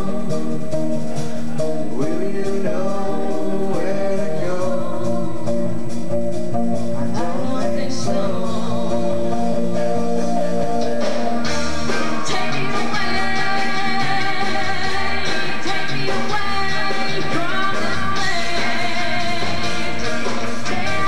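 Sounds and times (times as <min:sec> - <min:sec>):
drum kit beat: 0:00.0 - 0:21.0
electric guitar: 0:00.0 - 0:21.0
woman singing: 0:07.2 - 0:09.8, 0:11.9 - 0:21.0.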